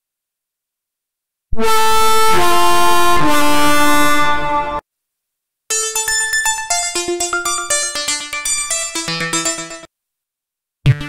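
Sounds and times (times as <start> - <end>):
synthesizer arpeggio: 5.7 - 9.9
synthesizer lead held notes: 5.7 - 9.9.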